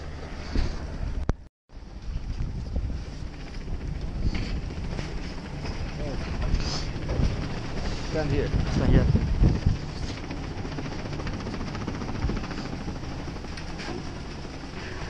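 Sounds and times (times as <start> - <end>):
wind buffeting microphone: 0.2 - 15.0.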